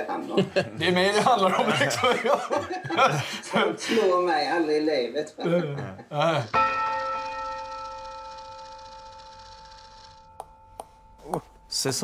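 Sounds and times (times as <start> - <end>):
bell-like chime ringing: 6.5 - 12.0.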